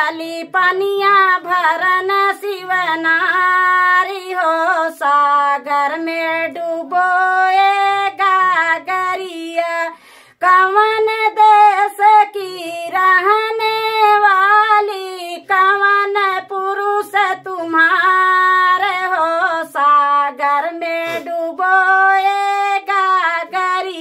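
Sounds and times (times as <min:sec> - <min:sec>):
woman singing unaccompanied: 0:00.0 - 0:24.0.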